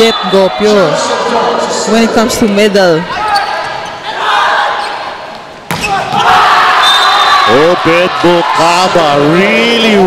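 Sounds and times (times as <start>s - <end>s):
volleyball smack: 5.7s - 6.3s
crowd cheering: 5.8s - 10.0s.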